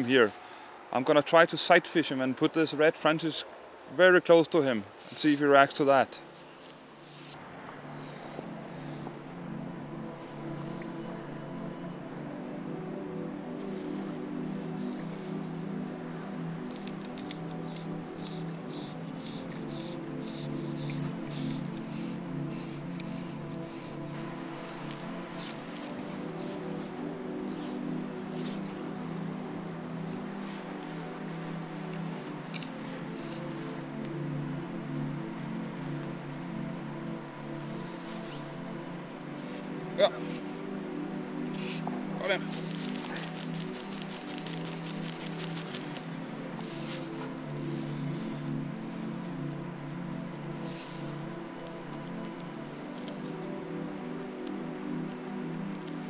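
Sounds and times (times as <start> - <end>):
slow sustained chords: 0.0 - 56.0.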